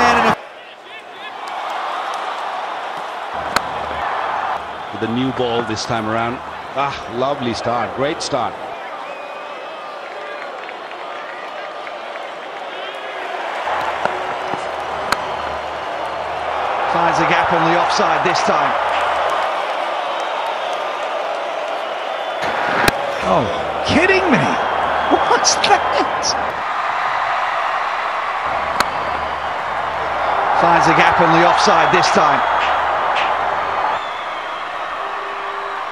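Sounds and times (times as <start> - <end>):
players calling: 0.0 - 35.9
bat striking ball: 3.4 - 4.0, 13.8 - 15.5, 28.6 - 29.1, 32.6 - 33.4
cricket bat striking ball: 3.4 - 4.0.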